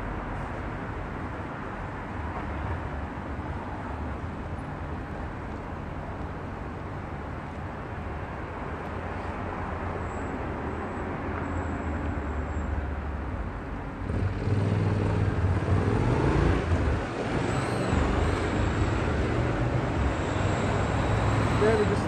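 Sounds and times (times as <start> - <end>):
passing cars rumbling: 0.0 - 22.0.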